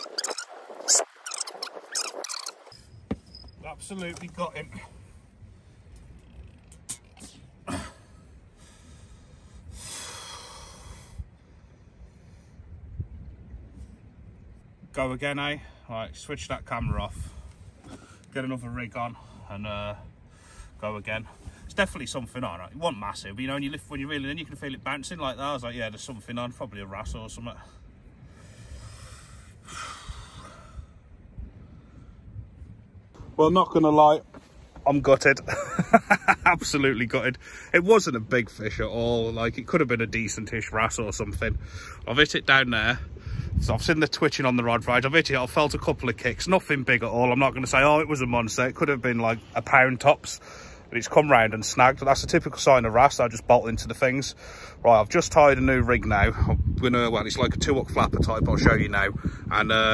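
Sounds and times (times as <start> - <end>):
faint low rumble: 2.7 - 54.1
man breathing out heavily: 28.3 - 31.1, 54.4 - 54.8.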